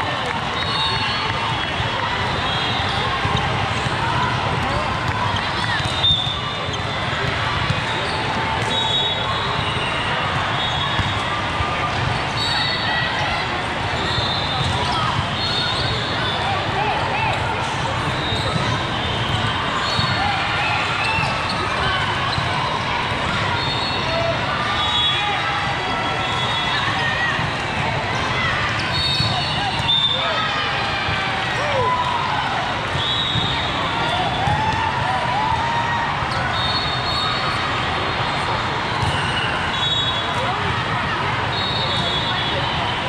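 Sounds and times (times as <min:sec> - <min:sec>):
voices in echoing hall: 0:00.0 - 0:43.0
volleyballs being hit and bouncing: 0:03.0 - 0:08.8.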